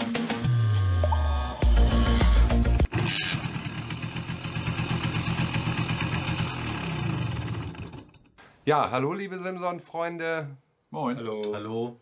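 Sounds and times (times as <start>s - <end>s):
background music: 0.0s - 2.9s
two-stroke motorcycle engine running: 2.9s - 8.3s.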